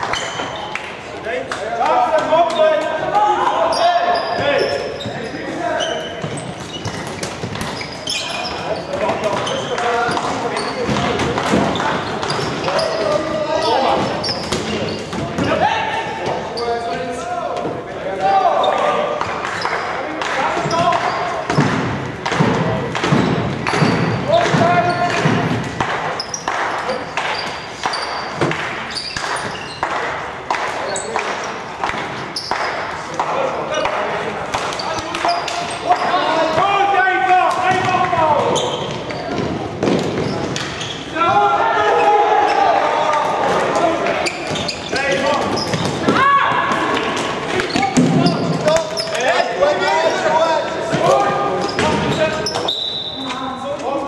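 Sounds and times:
players calling and shouting: 0.0 - 54.0.

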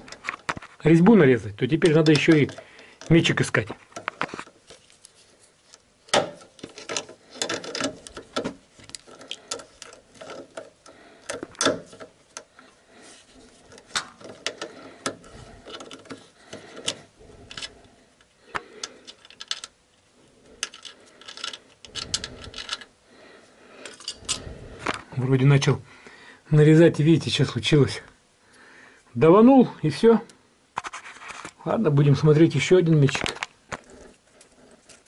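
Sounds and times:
pliers clicking and scraping metal: 1.7 - 5.0, 5.7 - 12.7, 13.7 - 17.8, 18.5 - 19.8, 20.6 - 22.9.

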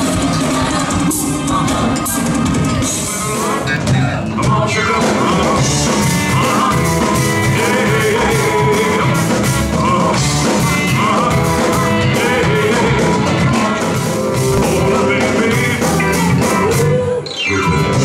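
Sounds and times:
lead vocal singing: 0.0 - 18.0
rock band playing: 0.0 - 18.0.

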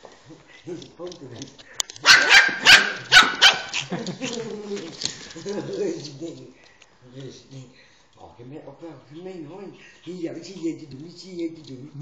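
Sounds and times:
puppy barking: 2.0 - 3.9.

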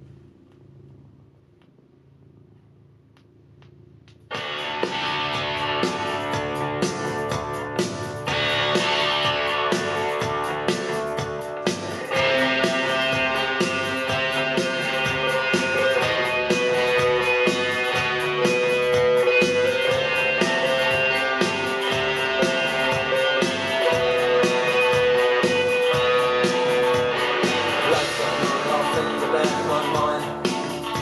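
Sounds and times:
guitar-led music from vinyl record: 3.5 - 31.0.

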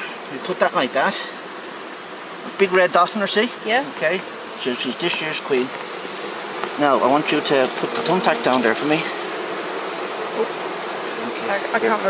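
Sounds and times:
honeybees buzzing: 0.0 - 12.0.

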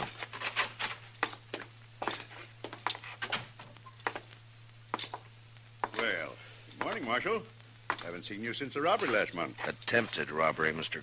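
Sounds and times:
footsteps walking: 0.0 - 7.2
steady low hum: 0.0 - 11.0.

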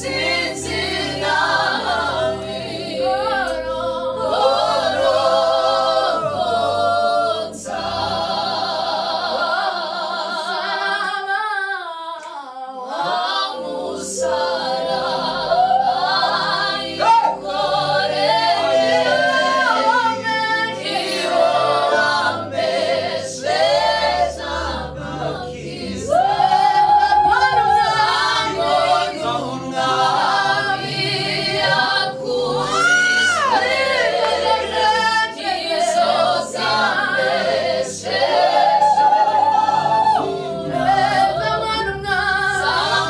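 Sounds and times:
group singing gospel song: 0.0 - 43.0.

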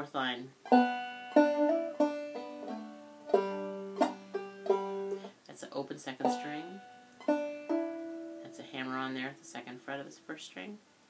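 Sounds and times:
banjo plucked notes: 0.6 - 5.3, 6.0 - 9.6.

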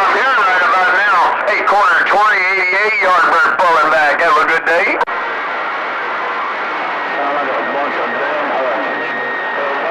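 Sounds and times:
radio static hiss: 0.0 - 5.4.

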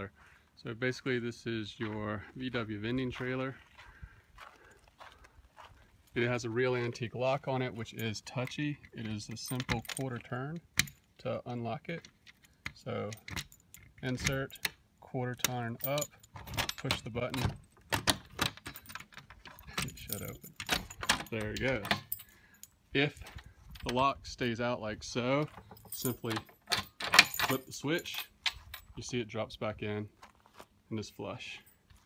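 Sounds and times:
faint footsteps: 1.6 - 8.0, 30.0 - 32.0
keys jangling: 15.8 - 23.9, 25.5 - 29.0.

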